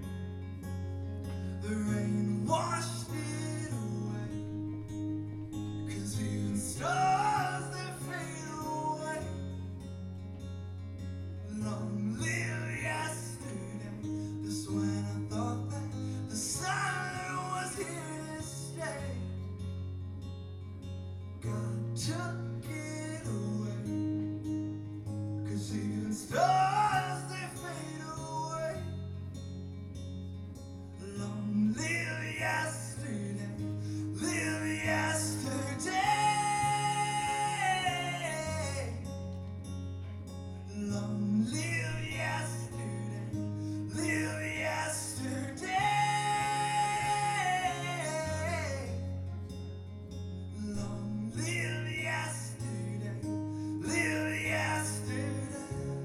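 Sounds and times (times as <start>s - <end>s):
strummed acoustic guitar: 0.0s - 56.0s
man singing: 1.6s - 4.5s, 5.9s - 9.6s, 11.5s - 19.5s, 21.4s - 24.1s, 25.5s - 28.9s, 31.0s - 39.1s, 40.7s - 49.1s, 50.6s - 56.0s.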